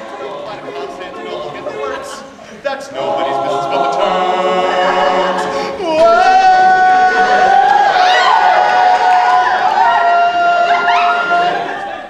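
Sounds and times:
male group singing chords: 0:00.0 - 0:12.0.

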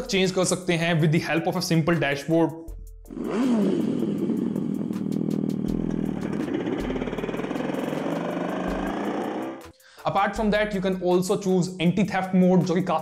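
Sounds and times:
music: 0:00.0 - 0:13.0
artificial motorcycle engine revving: 0:03.0 - 0:09.7.

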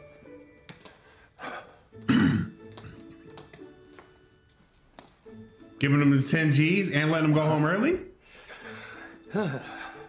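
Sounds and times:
soft background music: 0:00.0 - 0:10.0
man clearing his throat: 0:02.0 - 0:02.6.

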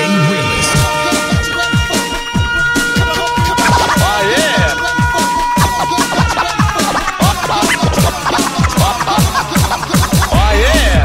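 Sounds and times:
electronic hip-hop beat: 0:00.0 - 0:11.0
turntable scratching: 0:00.0 - 0:11.0.

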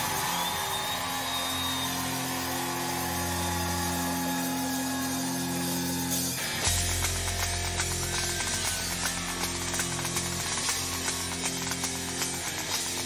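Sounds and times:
rock band holding chord: 0:01.1 - 0:13.0.

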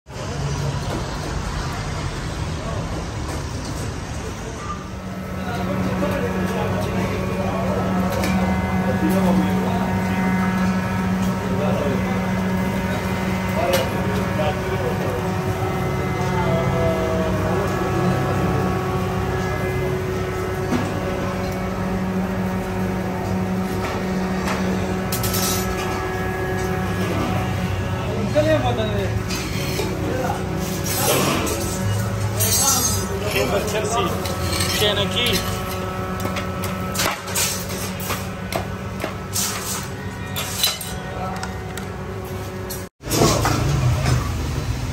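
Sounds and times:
indistinct voices talking: 0:00.1 - 0:43.4
steady low hum: 0:03.4 - 0:40.3.

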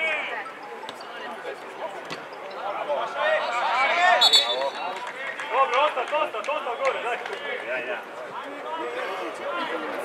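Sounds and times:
referee's whistle blast: 0:04.2 - 0:05.0.

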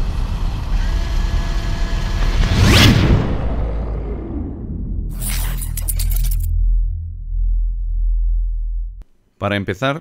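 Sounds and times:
deep bass drone: 0:00.0 - 0:09.0.

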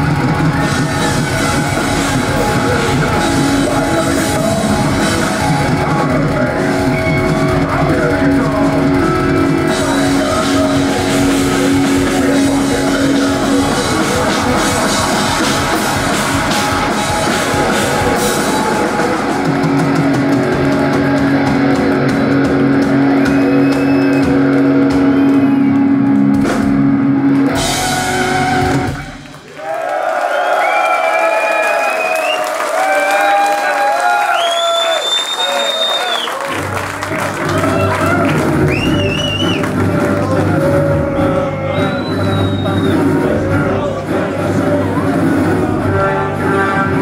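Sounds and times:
death metal band playing live: 0:00.0 - 0:29.4, 0:36.6 - 0:47.0.

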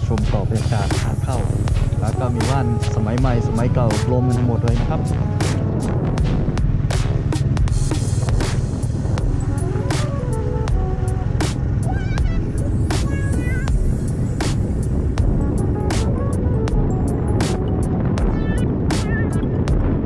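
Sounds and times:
background music with drum beat: 0:00.0 - 0:20.0
motorcycle engine rumbling: 0:00.0 - 0:20.0.

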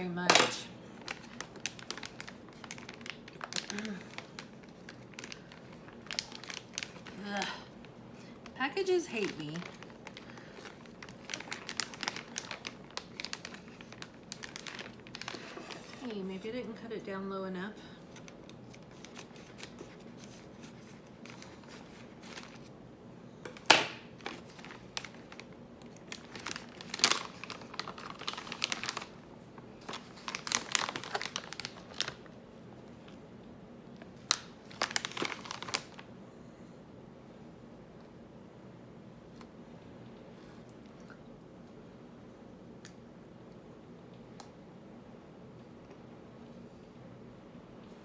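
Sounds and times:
snack pouch crinkling: 0:01.0 - 0:08.5, 0:09.2 - 0:15.7, 0:23.5 - 0:29.2, 0:29.8 - 0:32.3, 0:34.1 - 0:36.1.

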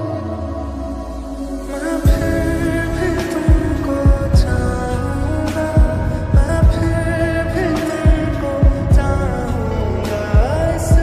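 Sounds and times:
sustained keyboard pad chords: 0:00.0 - 0:11.0
deep kick drum hits: 0:03.5 - 0:04.7, 0:05.8 - 0:07.0, 0:08.1 - 0:09.2.

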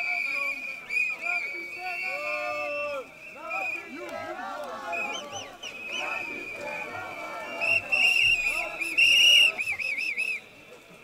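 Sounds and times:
whistle blasts: 0:00.0 - 0:04.0, 0:04.9 - 0:10.6
faint crowd chatter: 0:00.0 - 0:11.0.

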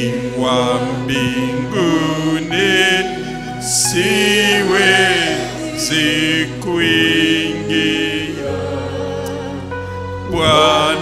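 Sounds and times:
person singing worship song: 0:00.0 - 0:11.0
sustained accompaniment chords: 0:00.0 - 0:11.0.

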